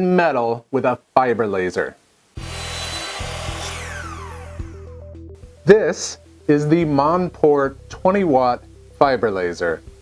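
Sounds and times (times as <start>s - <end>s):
saw blade whirring with whines: 2.4s - 5.0s.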